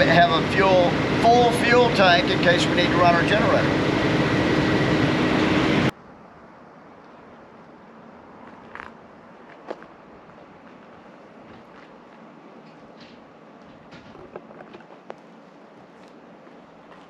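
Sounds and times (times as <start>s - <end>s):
faint outdoor background: 0.0s - 17.0s
vehicle and machinery noise: 0.0s - 17.0s.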